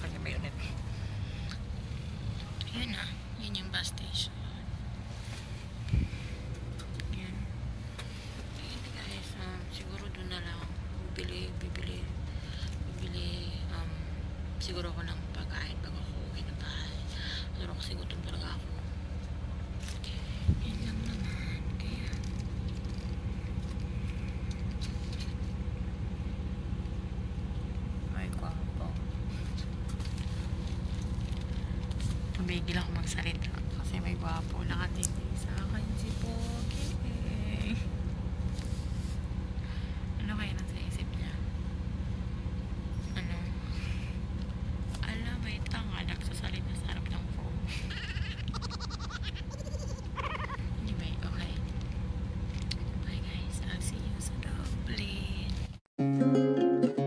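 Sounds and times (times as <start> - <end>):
vehicle rumble from inside cabin: 0.0 - 55.8.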